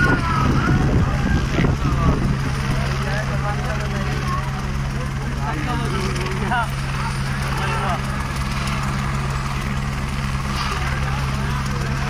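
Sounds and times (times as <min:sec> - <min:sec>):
crowd voices chattering: 0:00.0 - 0:12.0
low engine drone: 0:00.0 - 0:12.0.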